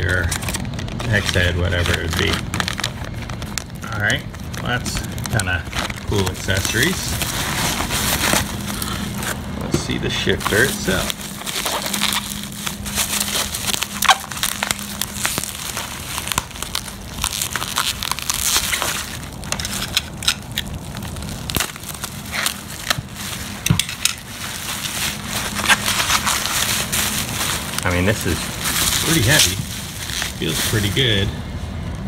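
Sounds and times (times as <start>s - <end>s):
bubble wrap crackling: 0.0s - 32.0s.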